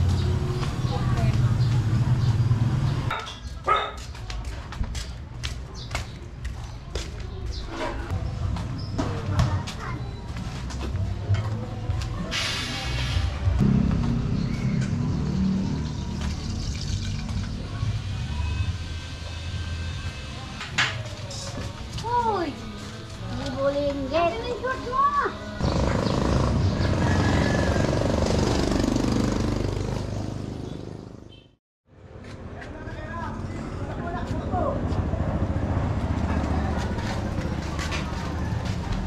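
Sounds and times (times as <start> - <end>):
footsteps on concrete: 0.0 - 2.0, 3.4 - 12.2, 32.1 - 33.1, 36.0 - 39.0
people's voices: 0.0 - 13.6.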